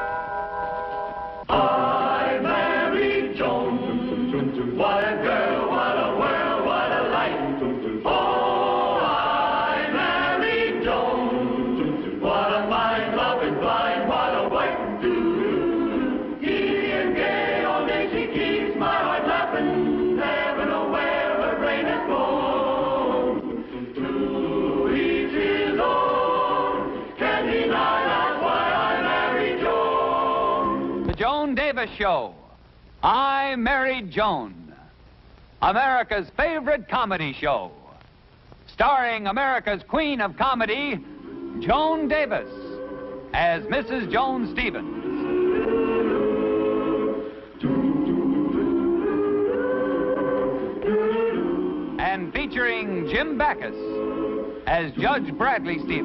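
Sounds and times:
choir singing theme song: 0.0s - 31.2s, 40.4s - 56.0s.

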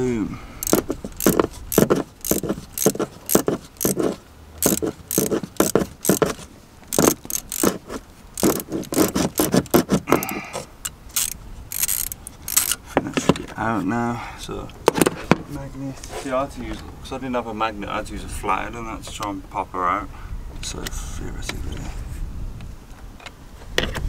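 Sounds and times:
ratchet wrench clicking: 0.6s - 12.8s.

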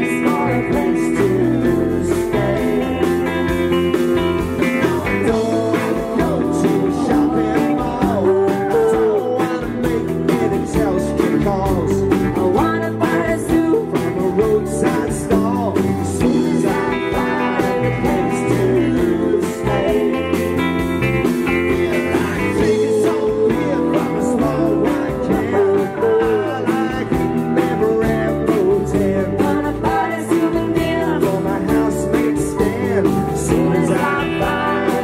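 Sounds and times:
steady drum beat: 0.0s - 35.0s
strummed guitars: 0.0s - 35.0s
voices singing: 0.0s - 35.0s.

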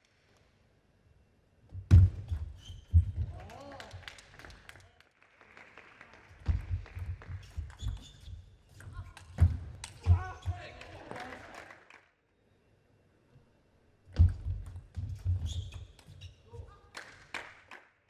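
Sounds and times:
footwork thuds on floor: 1.7s - 3.3s, 14.1s - 15.5s.

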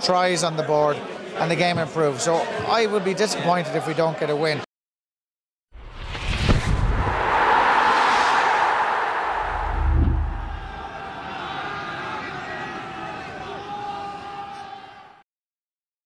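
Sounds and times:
whoosh and hit: 5.8s - 10.8s
deep boom: 5.8s - 10.9s
rushing swell of noise: 5.8s - 11.0s.

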